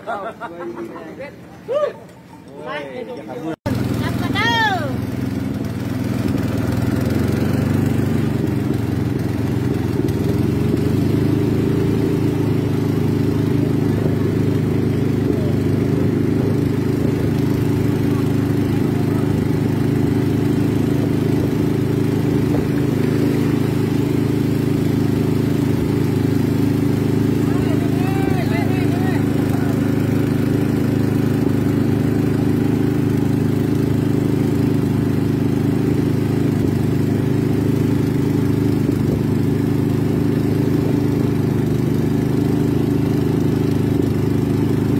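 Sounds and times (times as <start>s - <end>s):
boat engine running: 3.4s - 44.9s.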